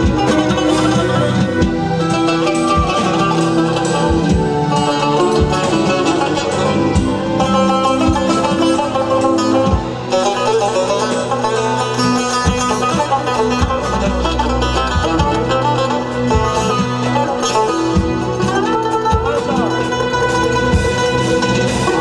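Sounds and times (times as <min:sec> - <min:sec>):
plucked lute melody: 0:00.0 - 0:22.0.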